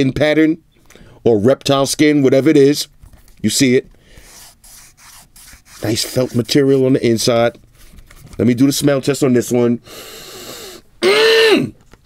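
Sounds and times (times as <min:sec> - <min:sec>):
hand rubbing felt lining: 0:04.2 - 0:08.2.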